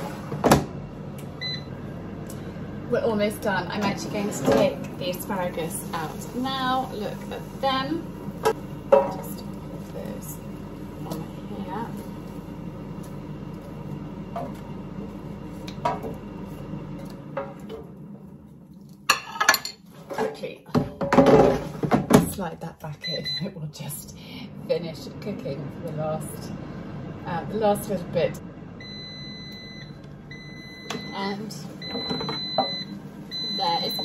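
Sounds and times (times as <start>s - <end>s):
air fryer humming: 0.0s - 34.0s.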